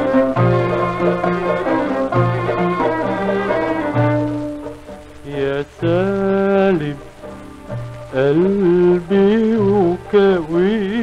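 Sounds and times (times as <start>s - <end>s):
old record music: 0.0s - 11.0s
record surface crackle: 0.0s - 11.0s.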